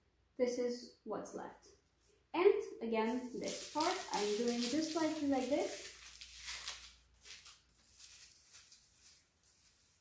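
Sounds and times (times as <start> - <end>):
dry papery skins crackling: 3.1 - 10.0.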